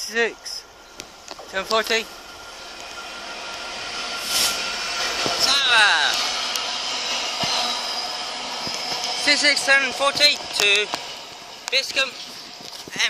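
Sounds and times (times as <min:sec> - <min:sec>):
diesel locomotive engine: 0:00.0 - 0:13.0
train wheels on rails: 0:00.0 - 0:13.0.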